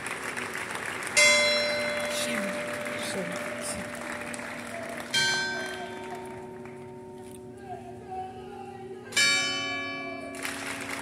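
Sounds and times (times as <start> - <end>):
crowd noise: 0.0 - 11.0
church bell tolling: 1.2 - 4.4, 5.1 - 7.8, 8.8 - 11.0.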